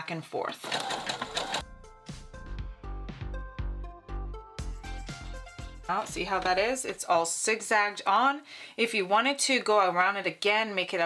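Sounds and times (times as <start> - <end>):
sewing machine stitching: 0.5 - 1.6.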